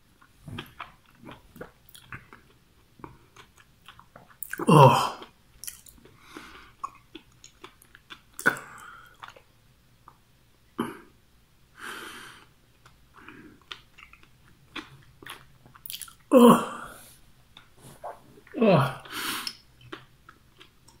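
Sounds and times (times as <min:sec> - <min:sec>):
person chewing food: 0:00.2 - 0:10.2, 0:12.4 - 0:16.4, 0:17.0 - 0:21.0.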